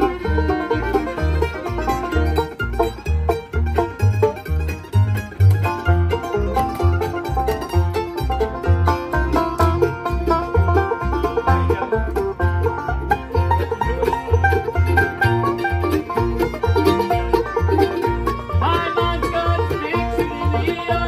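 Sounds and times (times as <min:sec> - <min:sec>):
mandolins and guitar picking: 0:00.0 - 0:21.0
upright bass plucking: 0:00.0 - 0:21.0.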